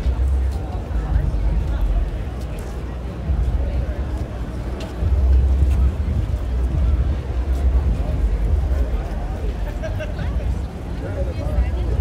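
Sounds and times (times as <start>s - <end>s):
faint background voices: 0.0s - 12.0s.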